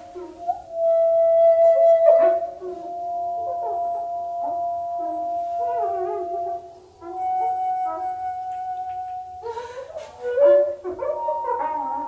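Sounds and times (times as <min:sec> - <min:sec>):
seal calls gliding howls: 0:00.0 - 0:12.0
shakuhachi long note: 0:00.0 - 0:12.0.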